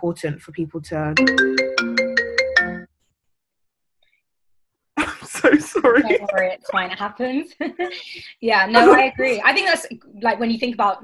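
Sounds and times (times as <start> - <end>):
conversation: 0.0 - 2.0, 5.0 - 11.0
phone ringtone chiming: 1.2 - 2.9.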